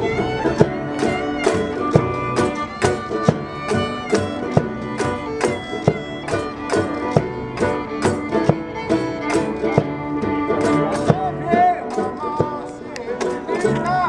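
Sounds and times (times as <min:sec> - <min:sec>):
steady thumping beat: 0:00.0 - 0:13.4
acoustic folk band playing: 0:00.0 - 0:14.0
fiddle lead: 0:00.0 - 0:14.0.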